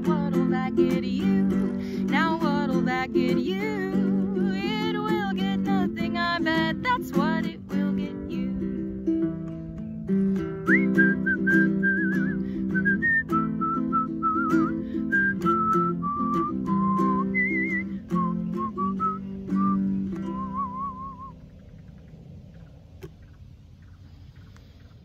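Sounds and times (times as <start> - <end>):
strummed ukulele chords: 0.0 - 21.3
person whistling a melody: 10.4 - 21.4.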